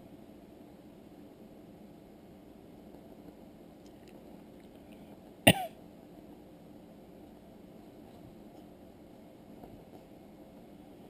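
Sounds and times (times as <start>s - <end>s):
person coughing: 5.5s - 5.8s.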